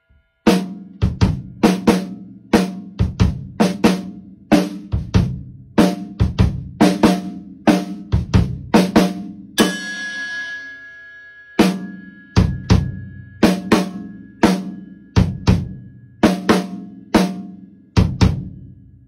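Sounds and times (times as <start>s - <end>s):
drum kit fill: 0.4s - 18.7s
cymbal bell ringing: 9.6s - 18.0s.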